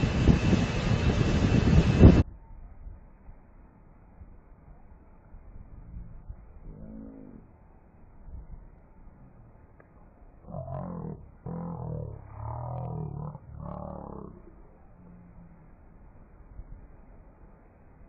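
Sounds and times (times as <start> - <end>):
slowed deep voice: 5.8 - 7.5, 10.4 - 15.8.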